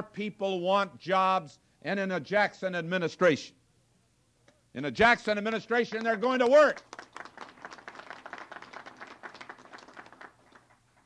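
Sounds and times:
crowd applauding: 5.9 - 11.0.

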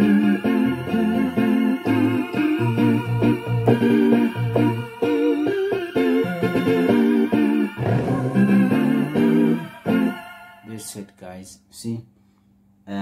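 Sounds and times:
keyboard melody and chords: 0.0 - 10.9
low bass notes: 7.7 - 9.7.

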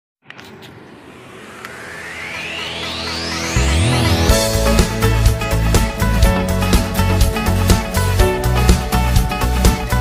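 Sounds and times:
rushing noise: 0.4 - 6.1
rising synth sweep: 0.6 - 7.4
held low synth notes: 0.9 - 8.2.

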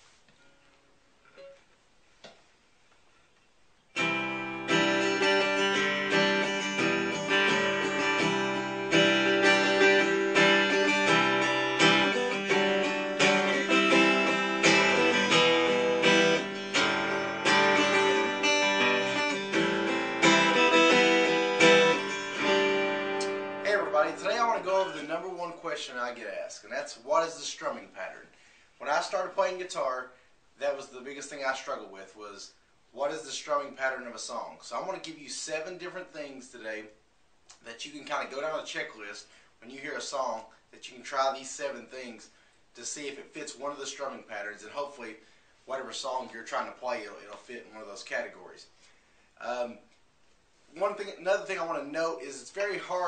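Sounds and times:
acoustic guitar strumming: 3.9 - 25.6.

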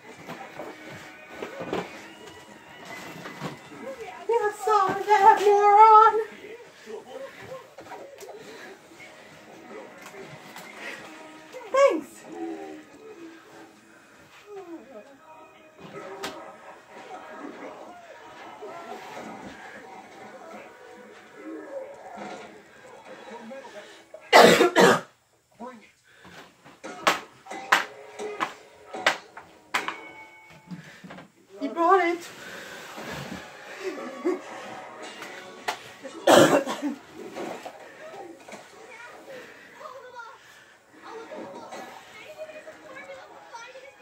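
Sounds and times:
person coughing: 24.3 - 25.1, 36.2 - 37.0.

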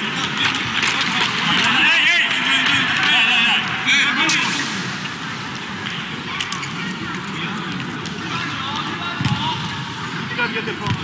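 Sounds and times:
spectators cheering and calling out: 0.0 - 11.0.

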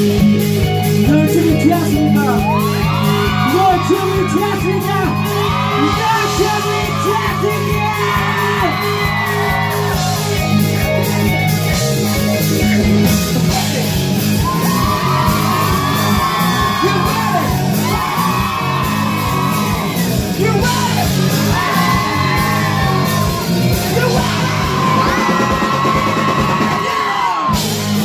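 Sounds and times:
bass line: 0.0 - 28.0
electric guitar: 0.0 - 28.0
man singing and shouting: 1.0 - 2.6, 3.4 - 8.8, 13.2 - 14.0, 16.4 - 17.7, 20.3 - 22.7, 23.7 - 25.4.

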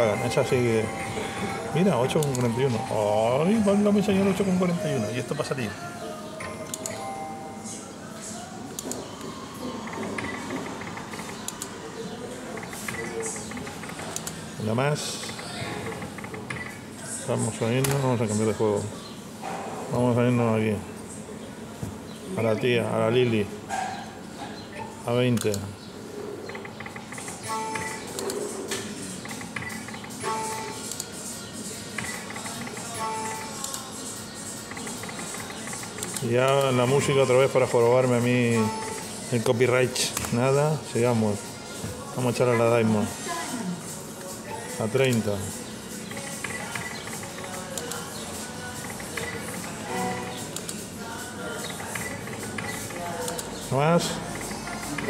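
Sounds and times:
slot machine sound effects: 0.0 - 5.6
slot machine music: 0.0 - 5.7, 26.8 - 28.2, 29.2 - 30.9, 31.8 - 41.4.

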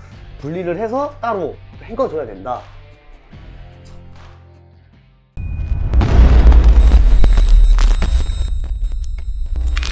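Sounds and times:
deep booming sound effect: 5.4 - 8.6
sharp glitchy clicks: 6.0 - 9.9.

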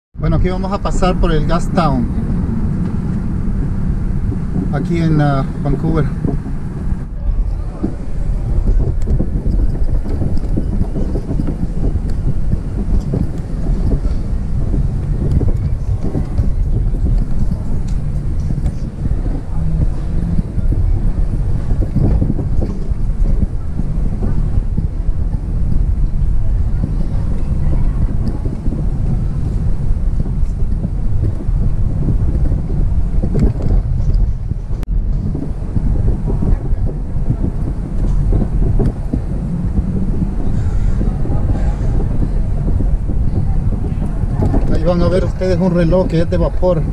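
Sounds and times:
tyre and engine rumble: 0.2 - 46.9
wind buffeting microphone: 0.2 - 46.9.

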